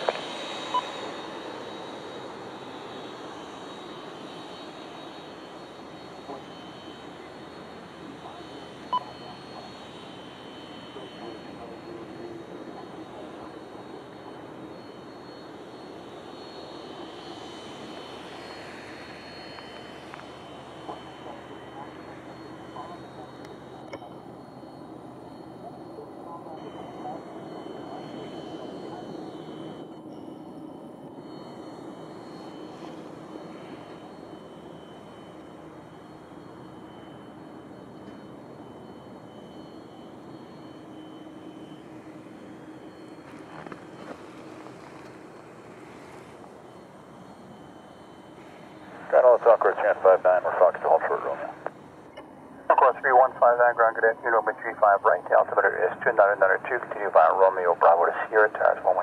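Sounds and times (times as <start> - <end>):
jet engines idling: 0.0 - 59.0.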